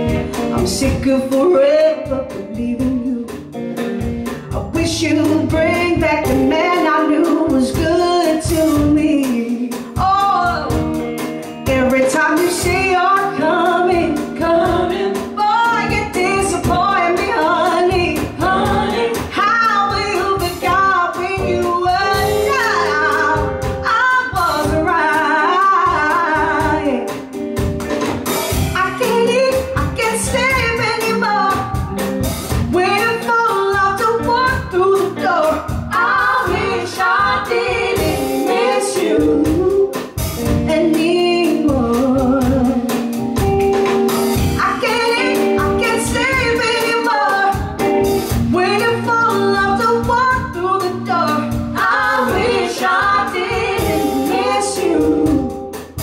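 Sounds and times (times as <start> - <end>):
woman singing with vibrato: 0.0 - 3.5, 4.5 - 11.0, 11.6 - 27.2, 28.8 - 31.9, 32.7 - 43.0, 44.5 - 55.8
band music with steady beat: 0.0 - 56.0
backing music with beat: 12.6 - 29.2, 42.6 - 48.8, 50.8 - 56.0.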